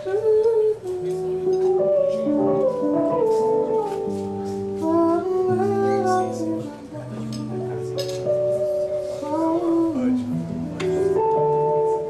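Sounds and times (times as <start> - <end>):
drum kit with light cymbal: 0.0 - 12.0
electric guitar: 0.0 - 12.0.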